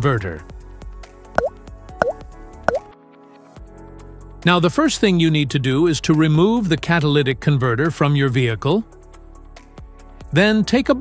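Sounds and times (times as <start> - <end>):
soft background music: 0.0 - 11.0
pop sound effects: 1.4 - 2.8.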